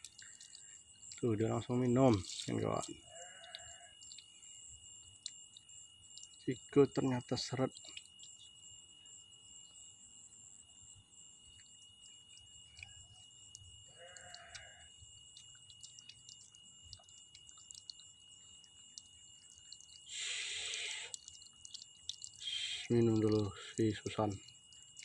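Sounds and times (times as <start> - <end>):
small ticks: 0.0 - 8.8, 11.2 - 25.0.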